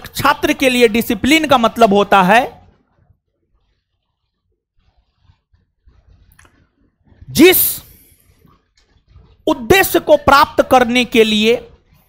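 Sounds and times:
man speaking: 0.0 - 2.6, 7.3 - 8.0, 9.5 - 11.8.

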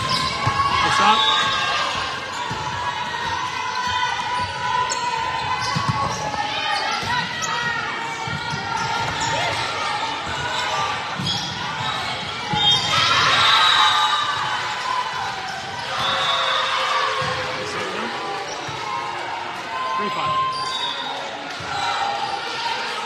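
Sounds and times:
voices of players and spectators: 0.0 - 23.0.

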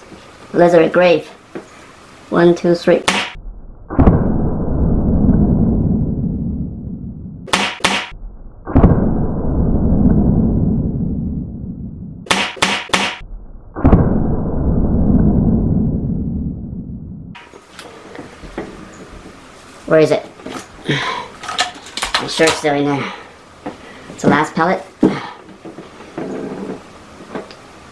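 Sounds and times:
air rifle shots: 3.0 - 3.4, 7.5 - 8.2, 12.3 - 13.2.

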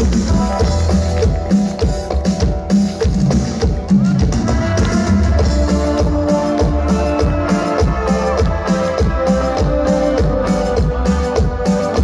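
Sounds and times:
drum kit beat: 0.0 - 12.0.

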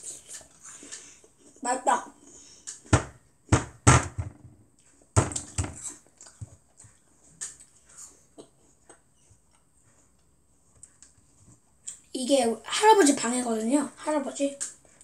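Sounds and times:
soft chewing clicks: 5.9 - 12.1.

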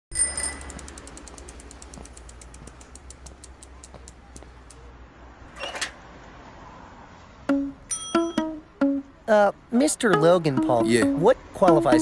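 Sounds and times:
bicycle bell ringing: 0.1 - 1.6, 7.9 - 8.6
bicycle freewheel ticking: 0.1 - 4.0.

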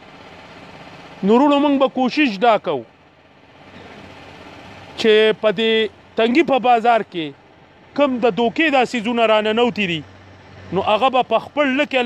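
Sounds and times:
faint engine noise: 0.0 - 12.0.

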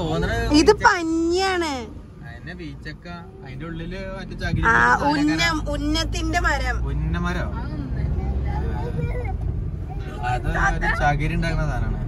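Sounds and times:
road vehicle rumble: 0.0 - 12.0.

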